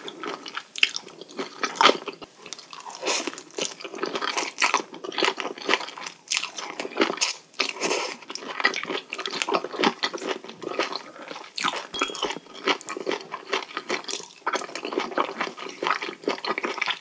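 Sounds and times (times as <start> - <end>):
brief clink: 12.0 - 12.6.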